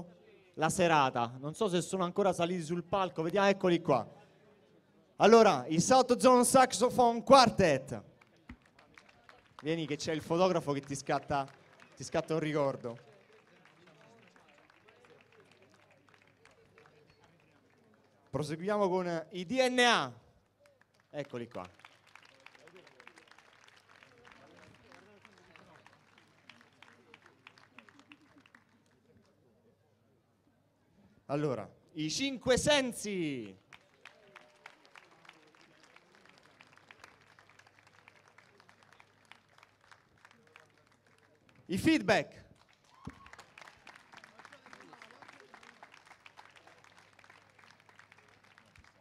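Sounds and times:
audience clapping: 8.2 - 18.6, 20.5 - 29.2, 33.6 - 49.0.

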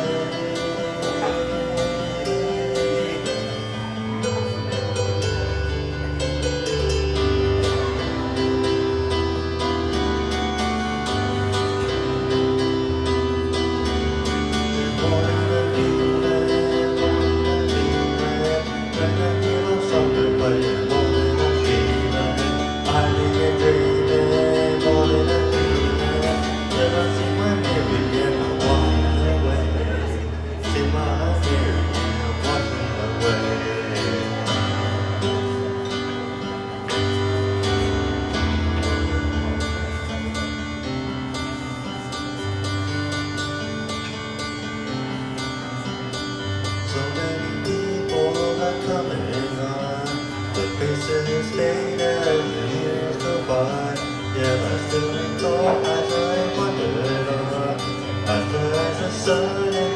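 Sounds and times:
electronic keyboard chords: 0.0 - 59.9
man singing into a microphone: 0.0 - 59.9.

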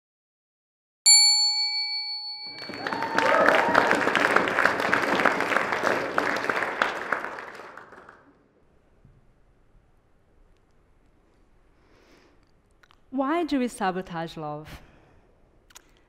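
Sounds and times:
bell-like chime: 1.1 - 3.2
audience applause: 2.5 - 8.4.

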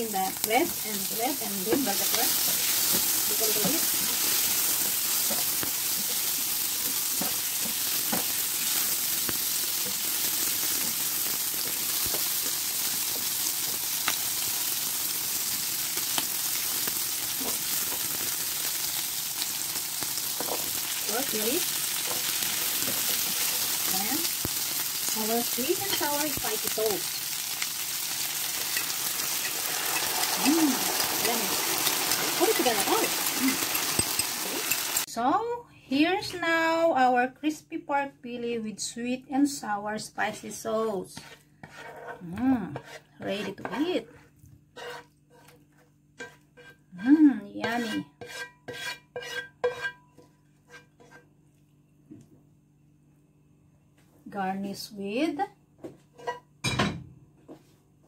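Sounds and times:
vegetables sizzling in oil: 0.0 - 35.1.

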